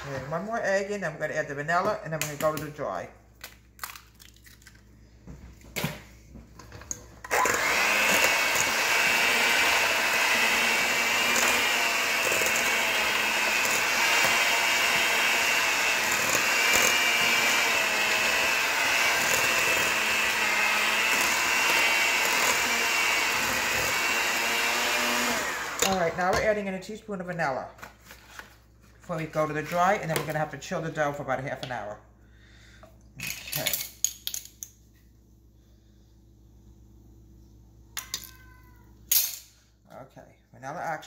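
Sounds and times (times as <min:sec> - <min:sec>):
electric hand mixer whining: 0:07.2 - 0:26.3.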